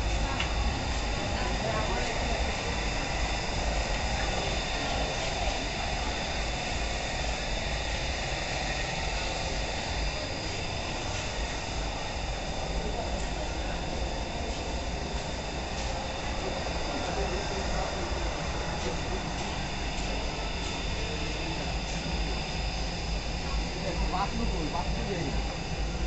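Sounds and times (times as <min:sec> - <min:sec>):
high-pitched whine: 0:00.0 - 0:26.0.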